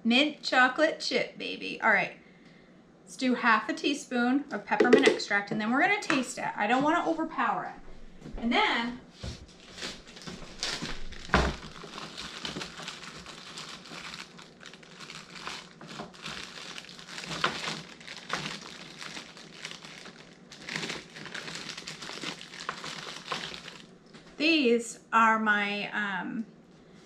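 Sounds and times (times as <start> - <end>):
plastic packaging crinkling: 9.5 - 24.2.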